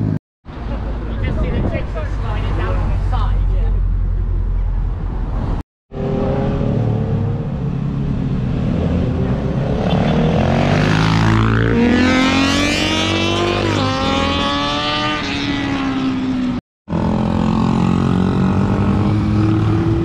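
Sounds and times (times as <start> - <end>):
vehicle engines accelerating: 0.0 - 20.0.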